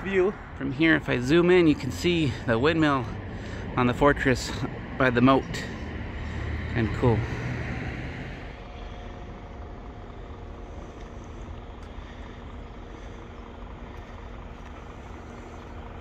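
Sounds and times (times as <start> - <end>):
distant road traffic rumble: 0.0 - 16.0.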